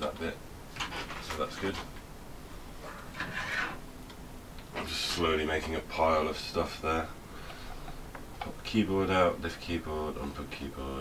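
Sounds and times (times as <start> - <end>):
faint low hum: 0.0 - 11.0
plastic scrape: 2.8 - 3.8.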